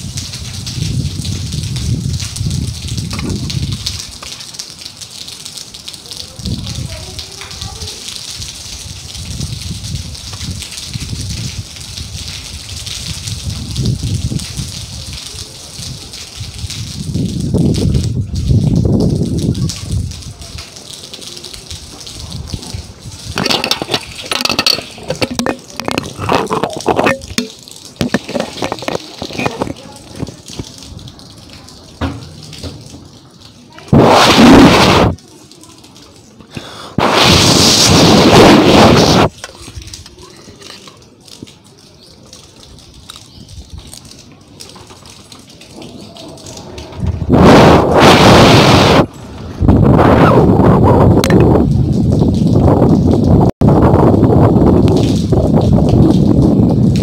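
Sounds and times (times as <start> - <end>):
wind gusting against microphone: 0.0 - 4.2, 8.3 - 20.6, 21.6 - 31.4, 33.9 - 35.2, 36.9 - 40.1, 45.4 - 57.0
light crackling noise: 19.5 - 49.4.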